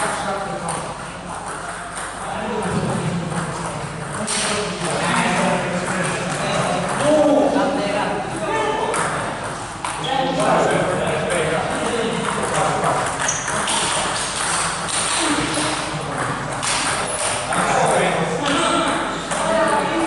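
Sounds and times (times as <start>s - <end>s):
people talking in a hall: 0.0s - 20.0s
table tennis balls clicking: 8.9s - 20.0s.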